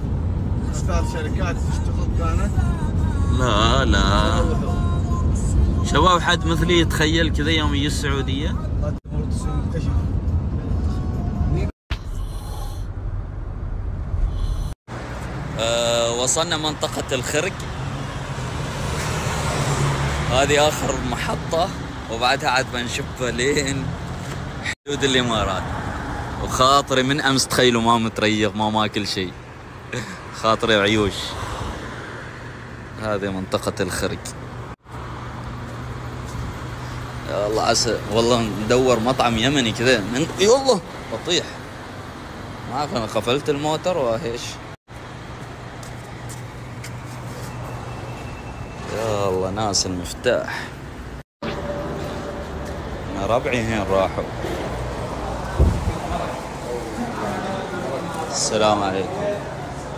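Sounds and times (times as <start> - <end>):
road traffic passing: 0.0 - 59.9.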